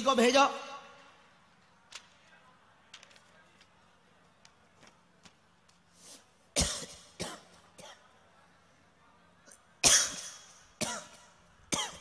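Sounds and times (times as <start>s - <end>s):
man coughing: 9.8s - 12.0s.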